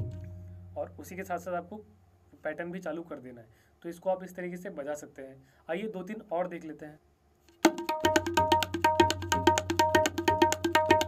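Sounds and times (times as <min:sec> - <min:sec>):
fast tabla strokes: 0:00.0 - 0:00.9, 0:07.5 - 0:11.0
low tabla resonance: 0:00.0 - 0:01.1, 0:07.6 - 0:11.0.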